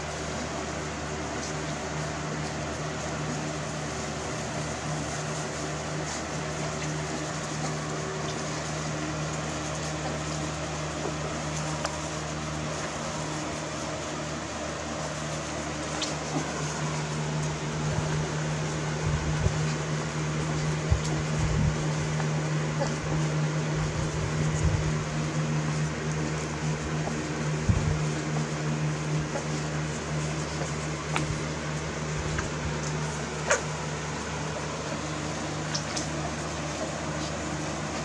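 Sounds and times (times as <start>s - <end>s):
mechanical hum: 0.0s - 38.0s.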